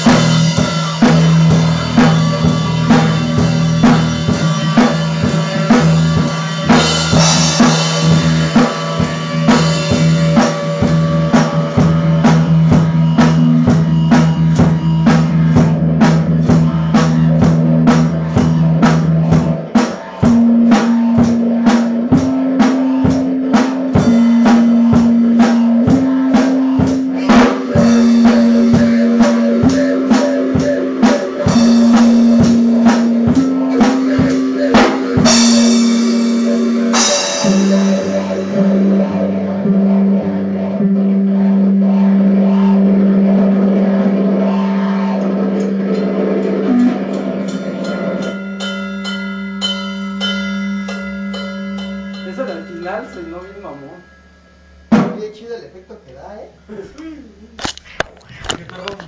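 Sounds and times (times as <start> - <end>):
instrumental band music: 0.0 - 55.6
cymbal crash: 44.4 - 55.5.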